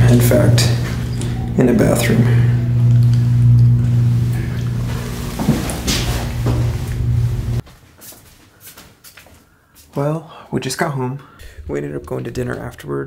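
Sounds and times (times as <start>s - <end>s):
low mechanical hum: 0.0s - 7.6s.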